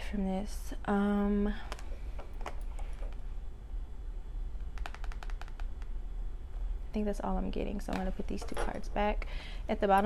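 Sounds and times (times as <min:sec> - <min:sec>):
cards clicking on wooden table: 0:04.7 - 0:05.9.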